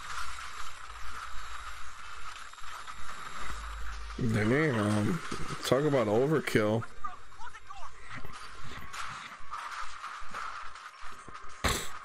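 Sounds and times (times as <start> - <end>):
steady rushing noise: 0.0 - 11.6.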